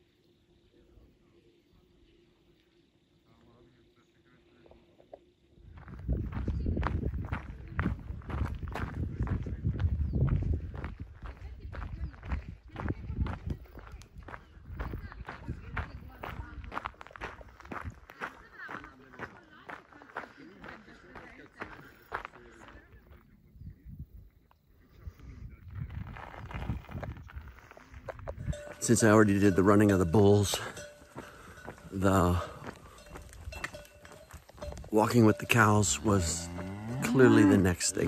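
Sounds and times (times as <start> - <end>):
footsteps walking: 26.1 - 38.0.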